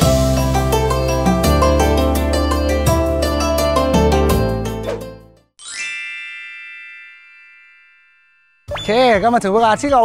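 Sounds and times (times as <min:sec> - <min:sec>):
background music: 0:00.0 - 0:05.5.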